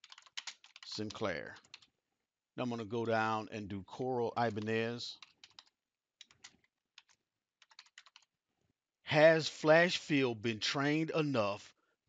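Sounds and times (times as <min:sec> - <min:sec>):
computer keyboard typing: 0:00.0 - 0:01.9, 0:04.4 - 0:08.3.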